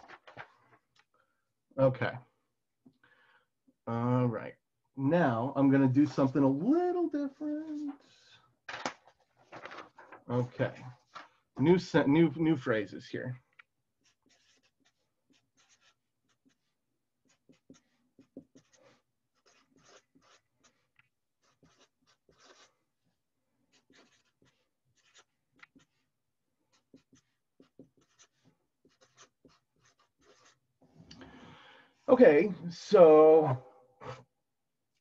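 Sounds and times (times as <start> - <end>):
marker writing on paper: 13.4 - 30.8.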